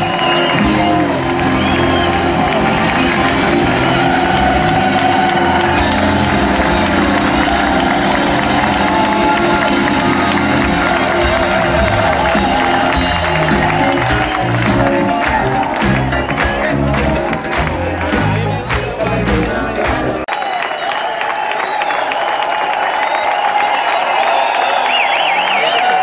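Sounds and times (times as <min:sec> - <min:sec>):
live band music: 0:00.0 - 0:20.3
crowd noise: 0:00.0 - 0:26.0.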